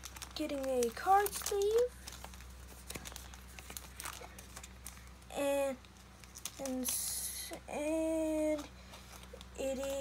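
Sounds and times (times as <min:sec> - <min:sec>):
plastic sleeve crinkling and clicking: 0:00.0 - 0:05.2, 0:05.8 - 0:07.6, 0:08.5 - 0:10.0.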